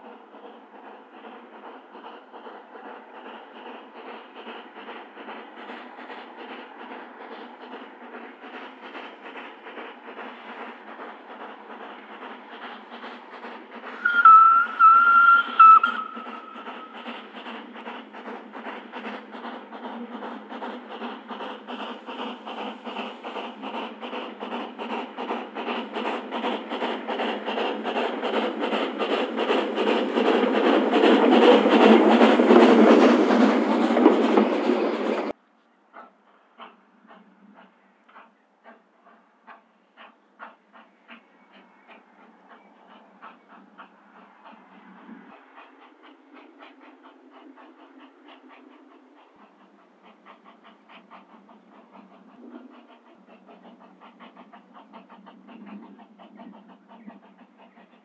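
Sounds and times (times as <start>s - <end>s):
steam engine exhaust chuffs: 0.0s - 35.4s, 36.6s - 58.0s
steam whistle blasts: 14.0s - 16.6s.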